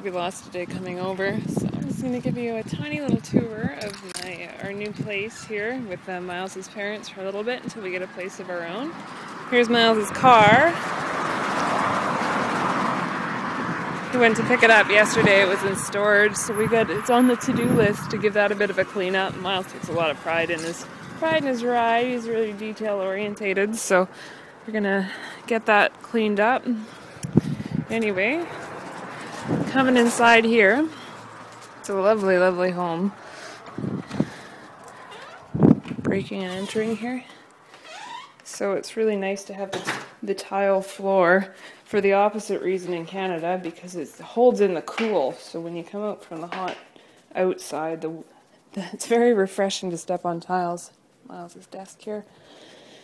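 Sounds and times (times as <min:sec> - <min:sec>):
vehicle passing: 0:00.0 - 0:38.1.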